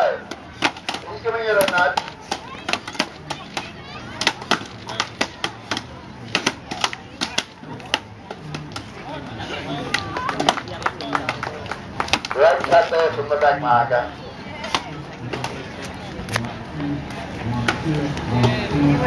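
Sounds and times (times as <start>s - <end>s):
axes chopping wooden logs: 0.2s - 8.9s.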